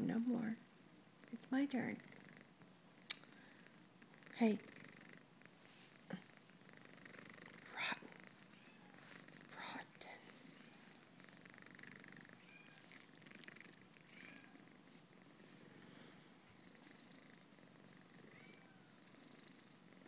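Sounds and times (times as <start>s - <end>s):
cat purring: 0.0s - 20.0s.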